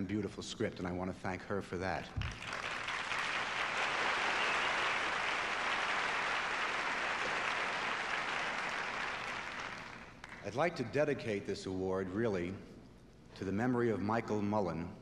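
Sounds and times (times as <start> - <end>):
audience applauding: 2.2 - 10.5.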